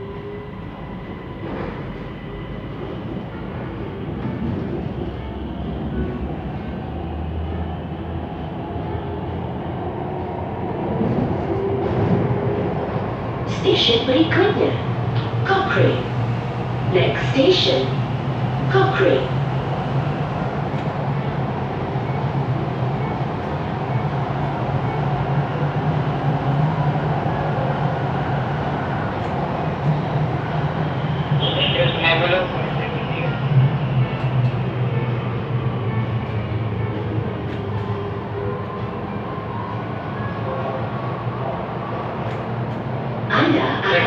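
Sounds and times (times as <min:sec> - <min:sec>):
train wheels rumbling on rails: 0:00.0 - 0:44.0.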